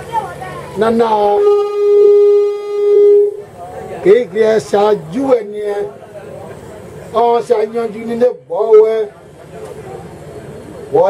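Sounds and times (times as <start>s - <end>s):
microphone feedback howl: 0.8s - 3.5s.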